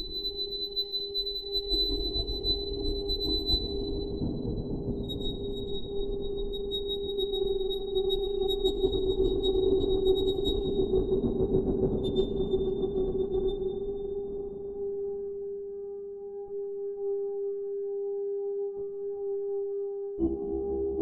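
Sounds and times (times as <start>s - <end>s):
low synthesizer drone: 20.1s - 21.0s.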